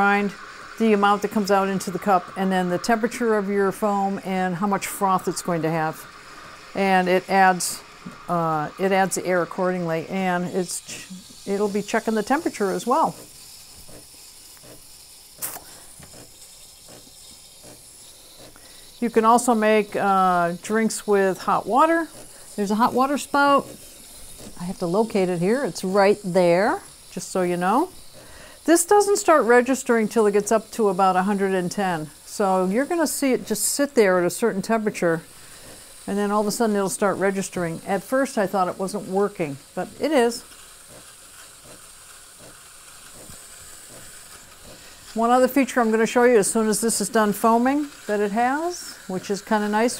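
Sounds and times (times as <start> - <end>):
steam wand hissing: 0.0 - 49.9.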